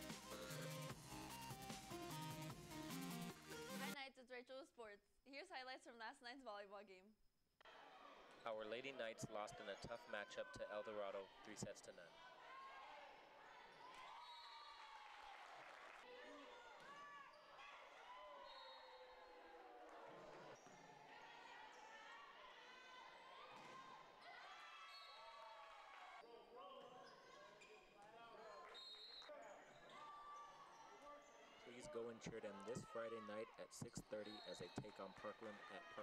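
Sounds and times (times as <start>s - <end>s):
voices in gym: 7.7s - 15.0s, 16.0s - 36.0s
sneakers squeaking on court: 33.8s - 35.5s.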